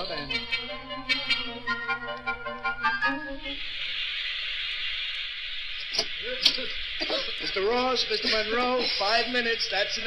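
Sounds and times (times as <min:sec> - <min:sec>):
clarinet music: 0:00.0 - 0:03.6
steam hissing: 0:03.5 - 0:10.0.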